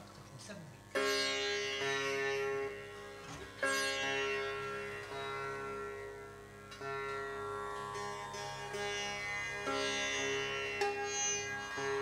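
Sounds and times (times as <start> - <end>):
tanpura drone: 0.0 - 12.0
sitar playing: 0.8 - 12.0.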